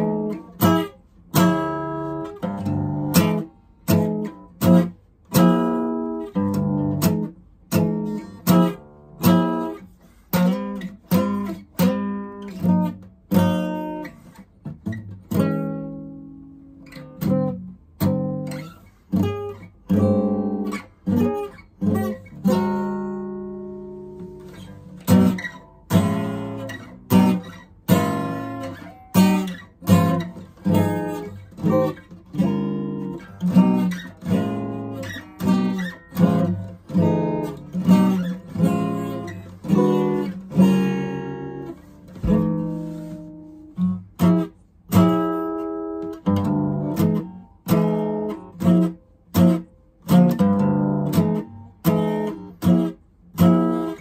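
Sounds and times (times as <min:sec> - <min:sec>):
acoustic guitar strummed chords: 0:00.0 - 0:54.0.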